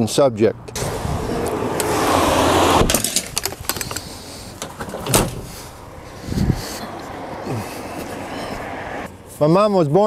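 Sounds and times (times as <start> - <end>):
car driving past: 0.7 - 3.0, 5.4 - 9.2.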